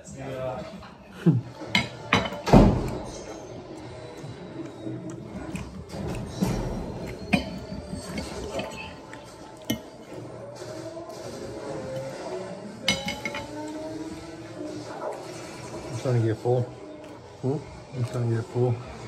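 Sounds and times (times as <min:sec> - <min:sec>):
cutlery clinking on plates: 0:01.6 - 0:03.1, 0:06.0 - 0:10.0, 0:12.8 - 0:13.7.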